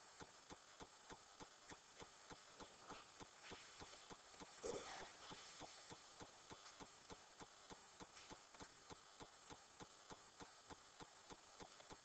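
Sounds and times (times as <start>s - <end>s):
faint regular ticking: 0.0s - 12.0s.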